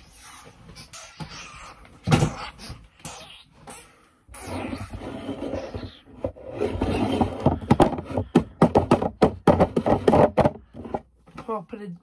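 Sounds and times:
hard plastic case scraping: 0:04.8 - 0:11.4.

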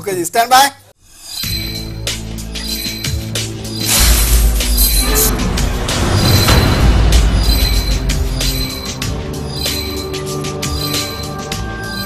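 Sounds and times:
harsh metallic screech: 0:01.0 - 0:12.0
dramatic intro music: 0:01.4 - 0:12.0
deep rumble: 0:04.0 - 0:09.4.

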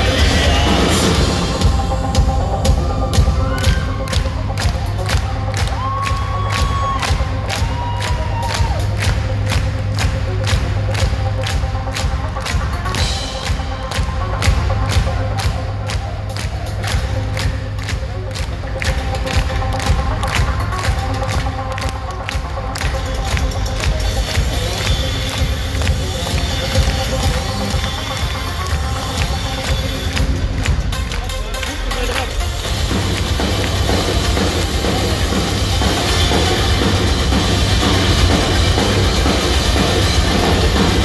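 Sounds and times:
crowd cheering: 0:00.0 - 0:41.0
live rock band playing: 0:00.0 - 0:41.0.

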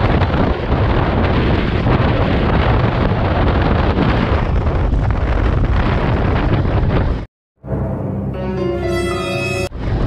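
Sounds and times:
wind buffeting microphone: 0:00.0 - 0:07.3, 0:09.7 - 0:10.0.

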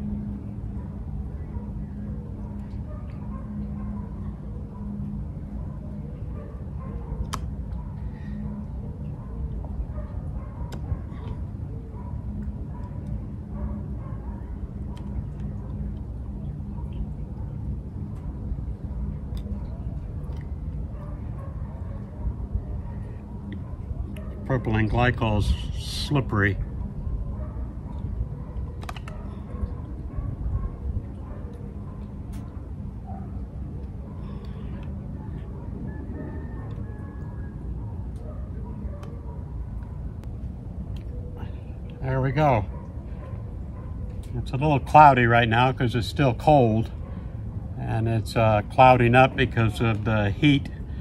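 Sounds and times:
faint hum: 0:00.0 - 0:51.0
steady low rumble: 0:00.0 - 0:51.0.

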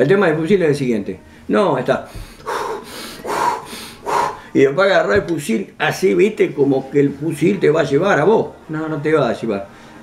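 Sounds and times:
man breathing out heavily: 0:02.1 - 0:04.5.

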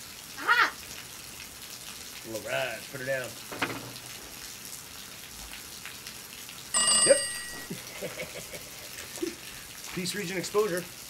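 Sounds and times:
phone ringtone: 0:06.8 - 0:07.8.

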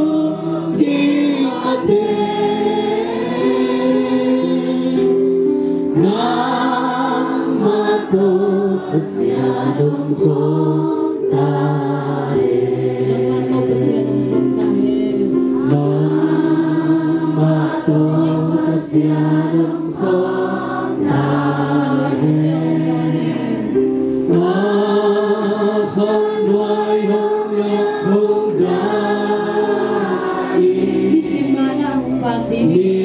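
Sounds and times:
congregation singing a hymn: 0:00.0 - 0:33.0.

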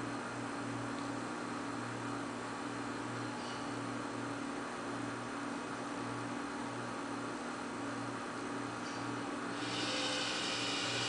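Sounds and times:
robot arm electrical hum: 0:05.9 - 0:11.0
hiss: 0:09.6 - 0:11.0.

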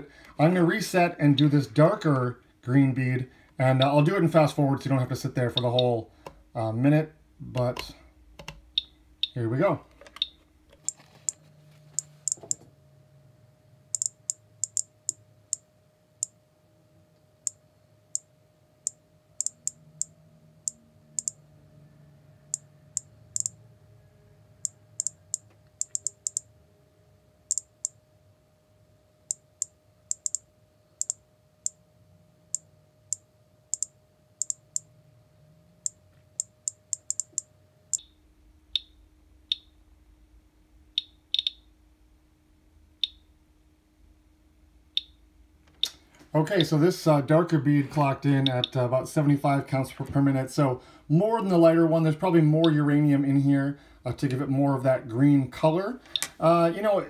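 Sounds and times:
geiger counter clicking: 0:13.9 - 0:15.6, 0:17.4 - 0:21.4, 0:22.5 - 0:23.6, 0:24.6 - 0:26.4, 0:27.5 - 0:28.0, 0:29.3 - 0:30.4, 0:31.0 - 0:31.8, 0:32.5 - 0:34.9, 0:35.8 - 0:38.2, 0:38.8 - 0:39.7, 0:41.0 - 0:41.6.

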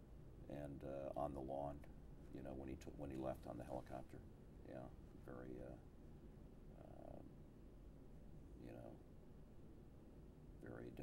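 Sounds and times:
low steady rumble: 0:00.0 - 0:11.0
faint voice hum: 0:06.7 - 0:07.3.

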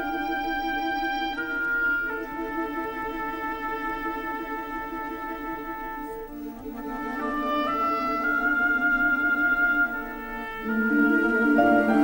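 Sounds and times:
orchestral film music: 0:00.0 - 0:12.0.

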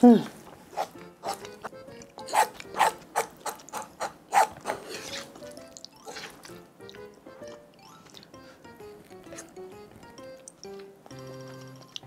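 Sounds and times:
soft background music: 0:00.0 - 0:12.0
food being chewed: 0:00.5 - 0:12.0.

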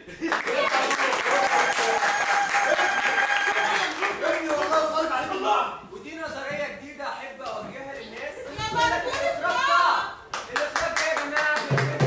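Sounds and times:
hands clapping rapidly: 0:00.3 - 0:05.0, 0:10.3 - 0:12.0.

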